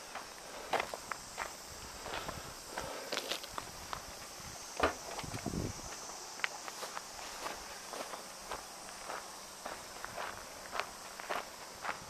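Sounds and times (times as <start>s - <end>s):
footsteps on gravel and grass: 0.0s - 12.0s.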